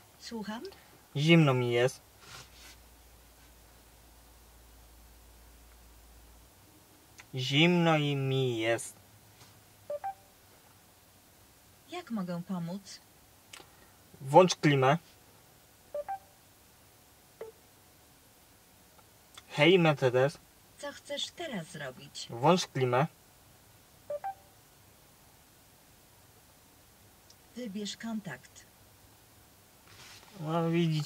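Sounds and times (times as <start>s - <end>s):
short electronic beeps: 9.9s - 10.2s, 16.0s - 16.3s, 24.1s - 24.5s.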